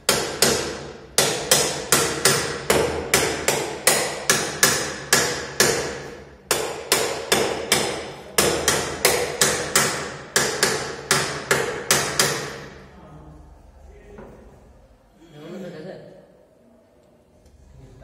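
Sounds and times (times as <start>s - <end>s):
hammer striking metal: 0.0s - 12.8s.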